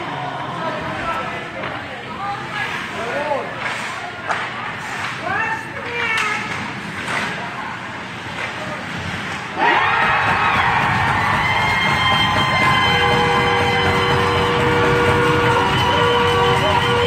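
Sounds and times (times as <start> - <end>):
ice rink crowd noise: 0.0 - 17.0
crowd cheering: 9.5 - 17.0
arena goal horn: 12.2 - 17.0.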